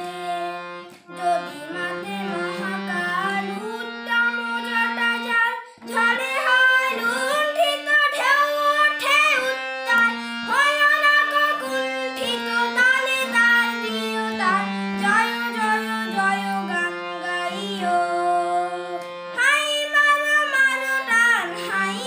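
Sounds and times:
instrumental held notes: 0.0 - 22.0
young person singing: 0.0 - 22.0.

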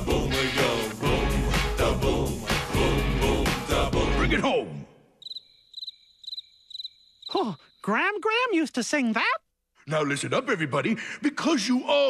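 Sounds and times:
cricket chirping: 5.1 - 7.9.

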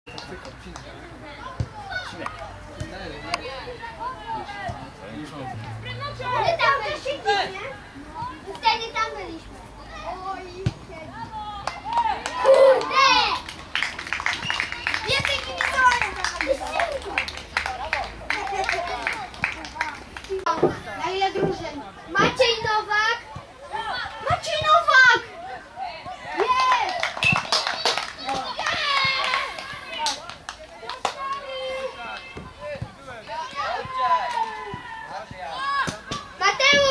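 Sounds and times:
boys shouting: 1.3 - 13.4, 14.6 - 19.6, 20.5 - 30.2, 30.8 - 36.9.

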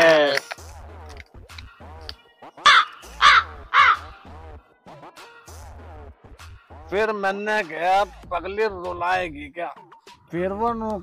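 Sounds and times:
crow cawing: 2.6 - 4.3.

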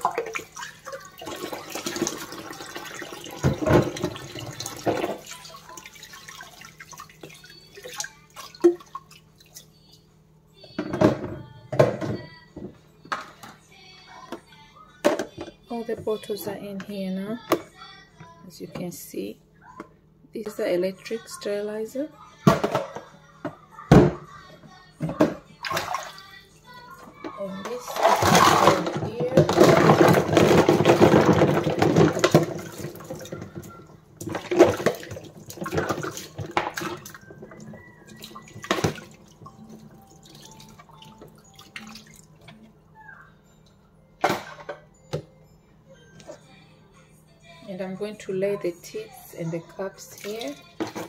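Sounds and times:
water pouring and splashing: 0.0 - 9.6, 27.8 - 42.4, 50.1 - 51.0
plastic parts knocking in water: 1.2 - 5.2, 27.6 - 39.6
plastic knocks and clatter: 3.4 - 5.2, 10.8 - 13.3, 28.0 - 38.0.

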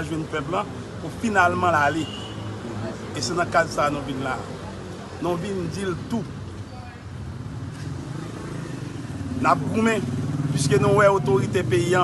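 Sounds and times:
outdoor noise: 0.0 - 12.0.

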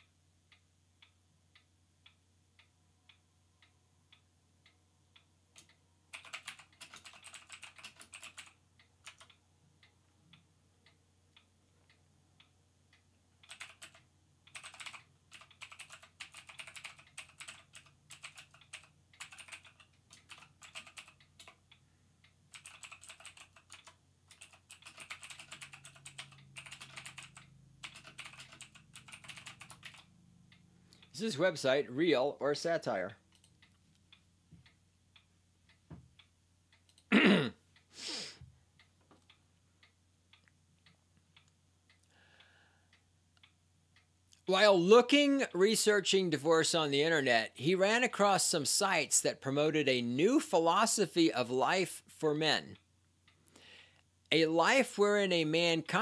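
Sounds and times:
faint ticking: 0.0 - 31.5, 32.6 - 37.9, 38.6 - 47.2
typing on computer keyboard: 5.6 - 9.4, 13.4 - 21.6, 22.5 - 30.1, 33.3 - 33.6.

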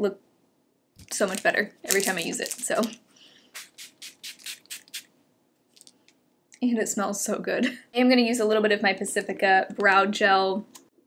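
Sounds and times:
spray bottle spritzes: 3.5 - 5.1.

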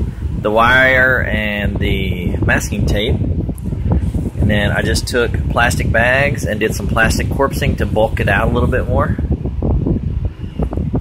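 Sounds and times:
low rumble on microphone: 0.0 - 11.0
man's voice: 0.5 - 3.2, 4.4 - 9.3.

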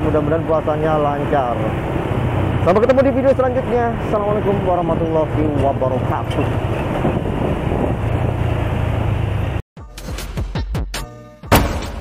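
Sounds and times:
motorcycle engine rumble: 0.0 - 9.6
wind rushing over microphone: 4.2 - 9.6.

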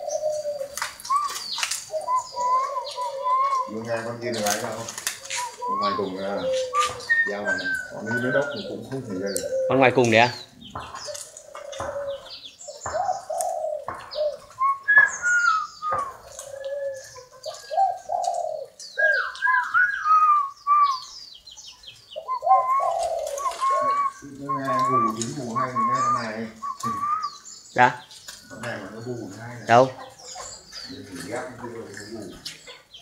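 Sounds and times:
doves cooing: 0.0 - 33.0
small birds chirping: 0.0 - 33.0.

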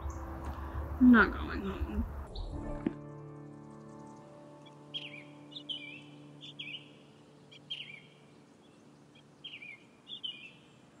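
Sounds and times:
held piano chord: 2.3 - 8.9
small bird chirping: 4.0 - 11.0.

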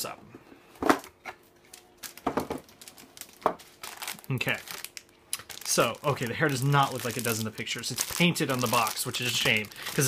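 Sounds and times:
plastic bags rustling: 1.6 - 10.0.

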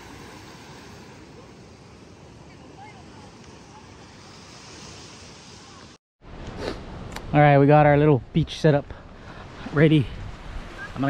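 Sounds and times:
surf washing onto beach: 0.0 - 6.0
wind: 0.0 - 11.0.

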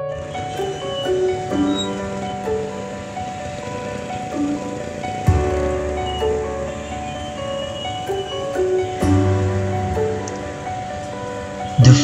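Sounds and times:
keyboard background music: 0.0 - 12.0.

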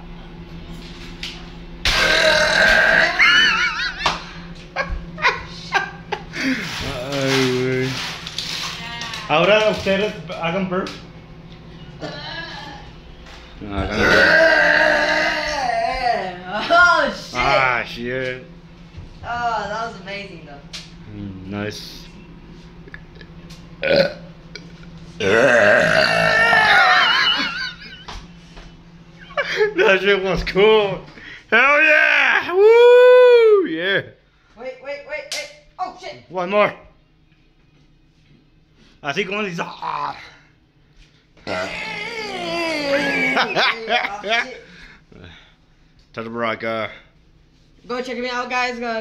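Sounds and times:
person burping: 1.9 - 3.6, 13.8 - 16.0, 23.8 - 27.5, 41.4 - 43.6.

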